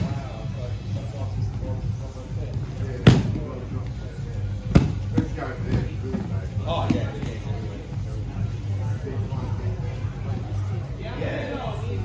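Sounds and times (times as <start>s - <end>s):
hands and feet slapping foam mats: 4.7s - 5.9s.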